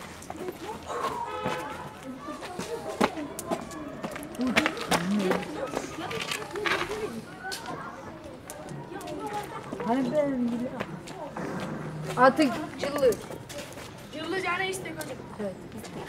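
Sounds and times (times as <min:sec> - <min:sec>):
boys talking and calling: 0:00.0 - 0:16.0.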